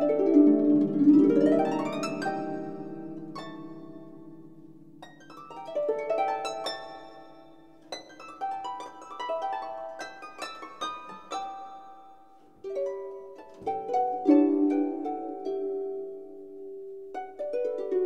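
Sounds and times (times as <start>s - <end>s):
solo harp playing: 0.0s - 18.0s.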